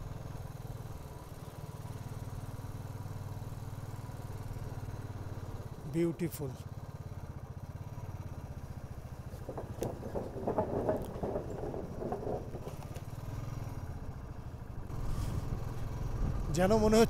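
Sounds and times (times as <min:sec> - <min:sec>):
motorcycle engine running: 0:00.0 - 0:17.0
road and wind noise: 0:00.0 - 0:17.0.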